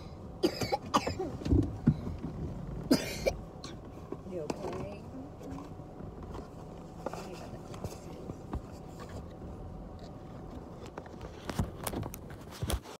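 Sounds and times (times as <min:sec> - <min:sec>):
low steady hum: 0:00.0 - 0:12.8.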